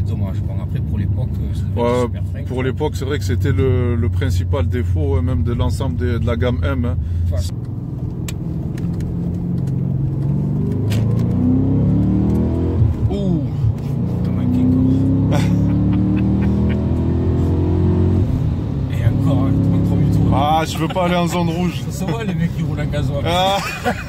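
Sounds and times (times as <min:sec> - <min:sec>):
car engine accelerating hard: 0:00.0 - 0:24.0.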